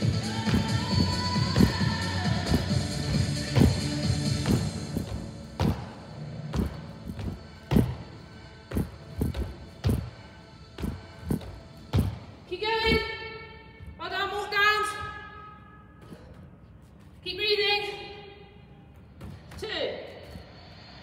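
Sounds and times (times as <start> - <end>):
background music: 0.0 - 15.9
thuds on exercise mat: 4.4 - 5.9.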